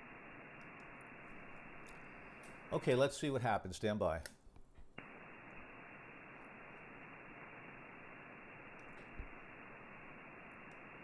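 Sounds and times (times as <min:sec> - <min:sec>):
radio receiver hiss: 0:00.0 - 0:11.0.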